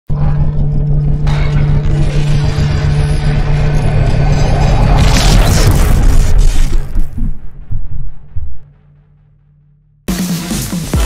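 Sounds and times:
deep rumble with low drone: 0.1s - 9.7s.

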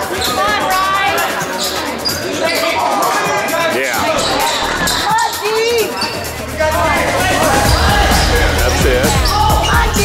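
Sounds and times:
voices in a hall: 0.0s - 10.0s.

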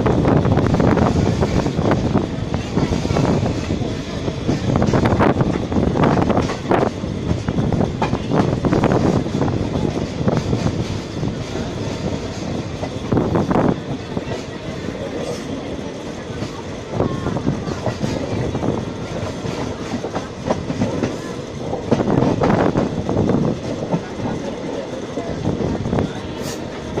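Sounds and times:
train coach rumbling: 0.0s - 27.0s.

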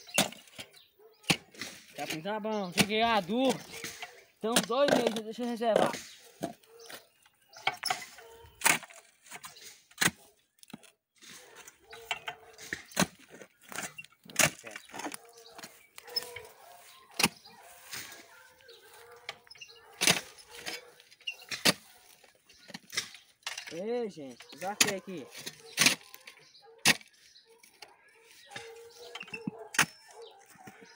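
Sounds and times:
post-hole digger knocking stony soil: 0.0s - 18.3s, 19.3s - 26.2s.

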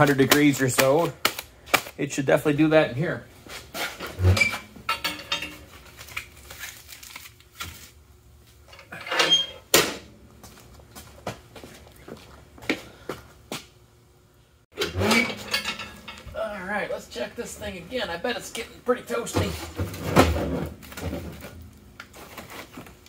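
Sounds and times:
metal clanks and knocks: 4.0s - 5.9s, 14.7s - 16.4s.

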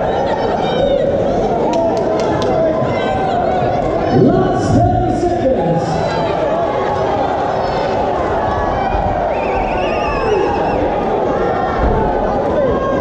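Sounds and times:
crowd shouting and chattering: 0.0s - 13.0s.

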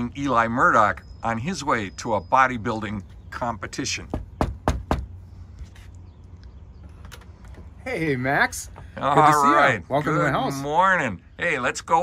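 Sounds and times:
knuckles knocking on screen door: 4.1s - 5.1s.

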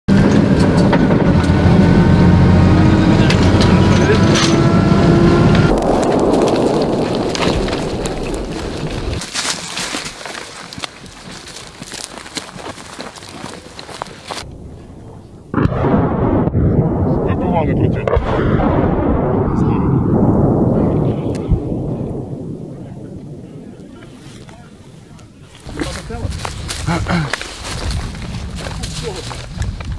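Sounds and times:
sudden loud noise: 0.1s - 9.3s, 14.5s - 24.6s
rustling through brush: 5.7s - 14.5s, 24.0s - 29.9s
footsteps running: 6.2s - 14.5s, 25.7s - 29.9s.

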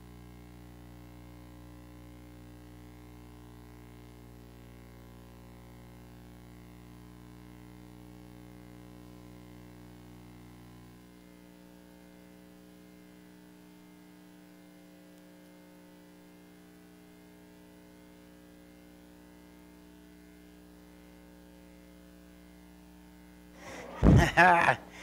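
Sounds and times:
faint electrical mains hum: 0.0s - 25.0s.

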